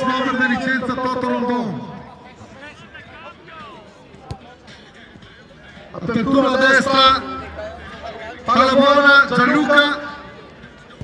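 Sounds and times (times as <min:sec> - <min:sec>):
players shouting: 0:00.0 - 0:11.0
ball being kicked: 0:04.1 - 0:04.5.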